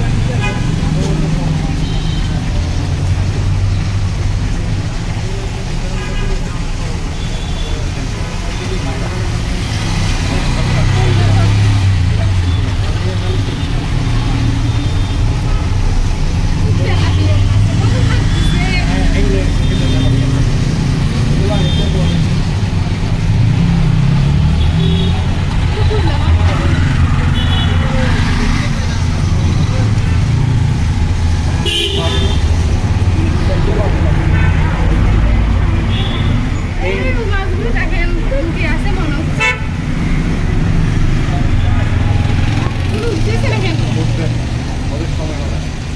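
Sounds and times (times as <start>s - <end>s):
indistinct voices: 0.0s - 45.9s.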